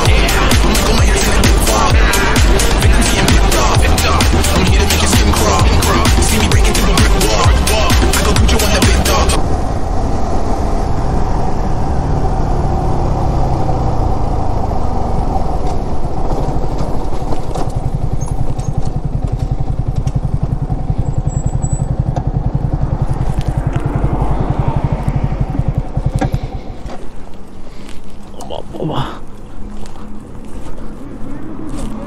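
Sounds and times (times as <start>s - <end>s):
motorcycle engine running and idling: 0.0s - 10.5s, 13.9s - 27.6s.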